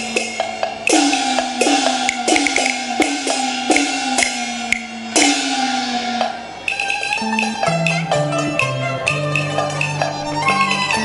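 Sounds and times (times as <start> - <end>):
melody instrument: 0.9 - 11.0.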